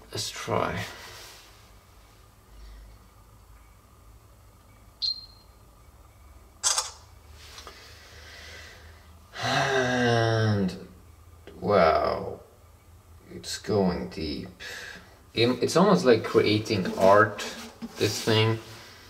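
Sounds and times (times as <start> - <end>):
short high beep: 5.0 - 5.5
camera shutter click: 6.6 - 7.0.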